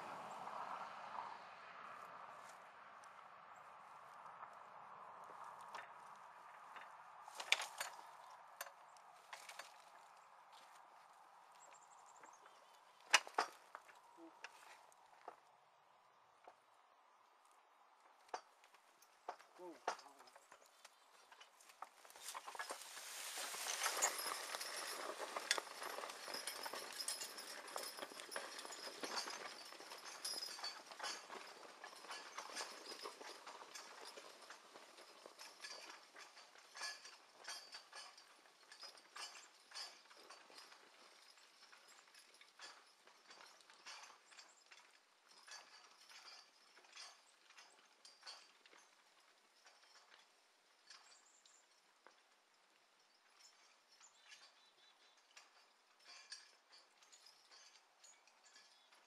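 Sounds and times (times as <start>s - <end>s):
horse hooves clopping: 1.8s - 59.0s
metal plow frame knocking and clanking: 5.6s - 10.8s, 11.5s - 15.5s, 18.1s - 52.3s, 53.0s - 59.0s.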